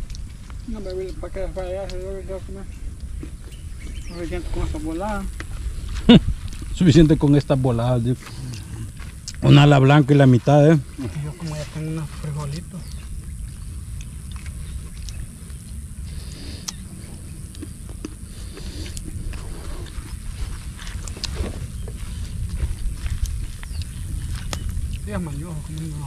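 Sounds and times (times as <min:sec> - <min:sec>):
campfire crackling: 0:00.0 - 0:26.0
steady low rumble: 0:00.0 - 0:26.0.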